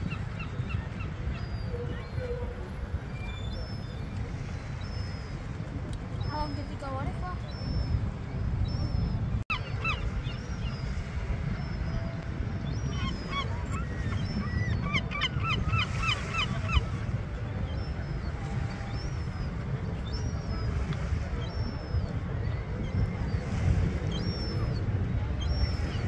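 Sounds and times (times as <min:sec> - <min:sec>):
gulls calling: 0:00.0 - 0:26.0.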